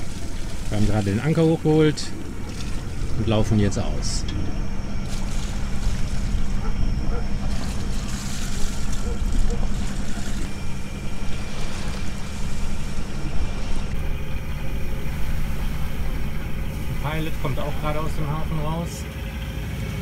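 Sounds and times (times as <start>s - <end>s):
boat engine humming: 0.0s - 20.0s.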